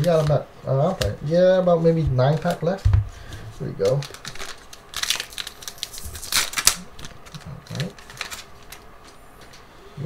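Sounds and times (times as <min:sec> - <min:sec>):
foil wrapper crinkling: 0:01.8 - 0:09.2.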